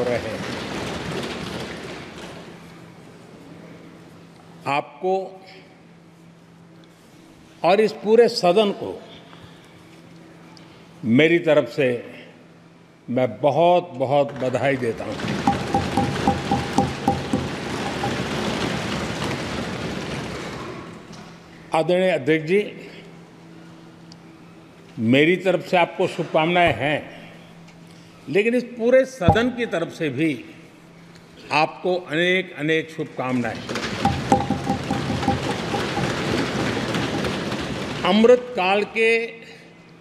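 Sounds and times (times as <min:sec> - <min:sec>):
people thumping wooden desks: 0:15.2 - 0:18.6, 0:33.8 - 0:37.9.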